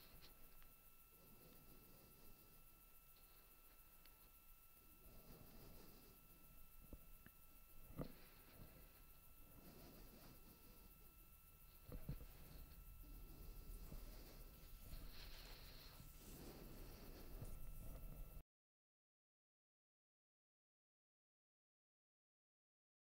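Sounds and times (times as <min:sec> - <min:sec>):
faint low rumble: 0:00.0 - 0:18.4.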